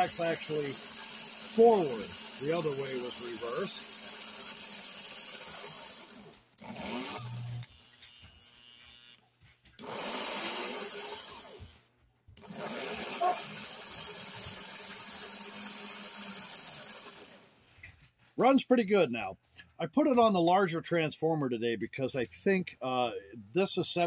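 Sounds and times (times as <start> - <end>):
toy train electric motor running: 0.0 - 11.8, 12.4 - 17.6.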